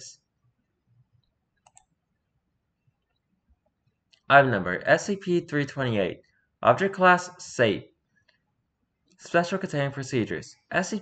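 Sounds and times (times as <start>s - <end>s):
computer mouse clicks: 1.2s - 2.0s.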